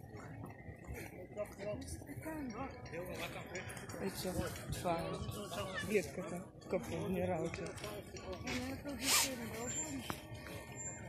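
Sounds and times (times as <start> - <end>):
people talking: 0.0 - 10.8.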